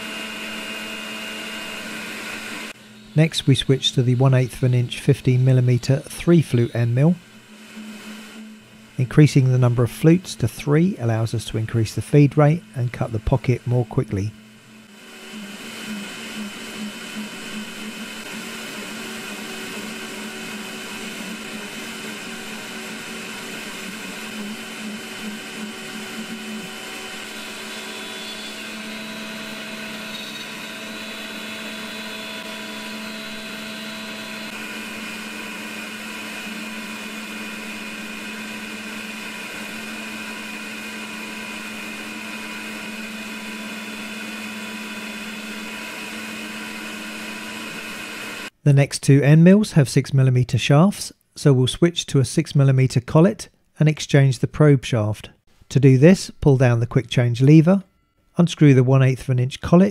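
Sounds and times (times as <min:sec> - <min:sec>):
milling spindle whining through metal: 0:00.0 - 0:48.5.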